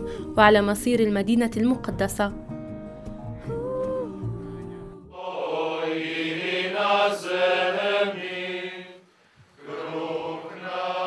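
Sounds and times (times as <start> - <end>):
group singing a slow hymn: 3.5 - 11.0.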